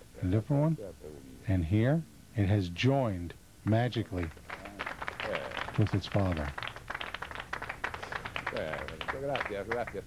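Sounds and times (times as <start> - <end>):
audience applauding: 4.2 - 10.0.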